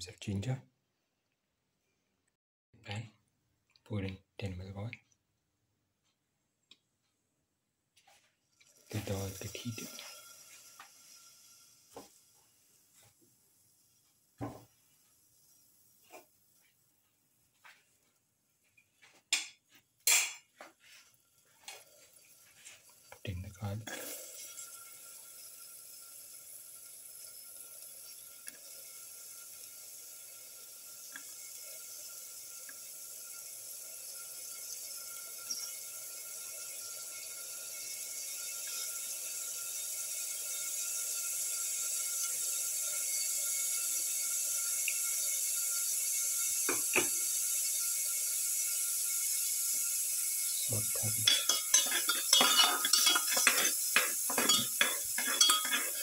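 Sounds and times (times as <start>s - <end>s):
garlic sizzling in oil: 8.0s - 16.8s, 20.0s - 56.0s
garlic clattering into a pan: 51.2s - 56.0s.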